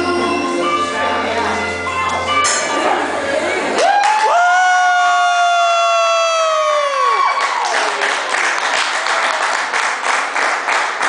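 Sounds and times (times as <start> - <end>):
boy singing a high note: 0.0 - 1.7
audience applause and cheering: 3.7 - 11.0.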